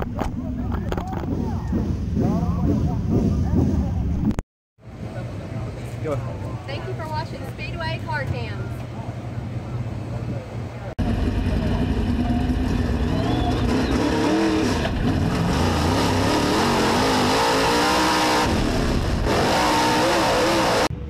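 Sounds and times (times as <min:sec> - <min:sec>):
race car engine revving: 0:11.0 - 0:21.0.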